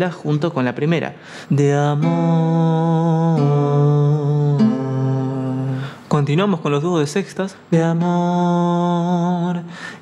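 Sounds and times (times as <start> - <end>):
male voices singing in harmony: 1.5 - 6.0.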